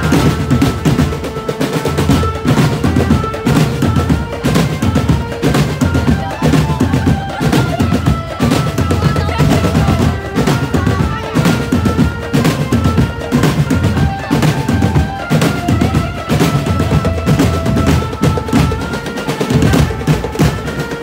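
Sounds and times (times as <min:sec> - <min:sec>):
melody line over drums: 0:00.0 - 0:21.0.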